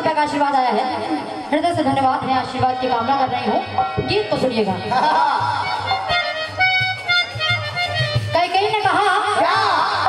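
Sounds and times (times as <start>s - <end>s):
harmonium melody: 1.6s - 10.0s.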